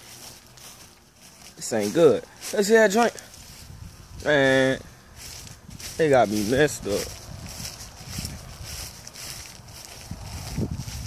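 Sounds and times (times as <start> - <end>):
wind rumble on microphone: 3.3 - 11.0.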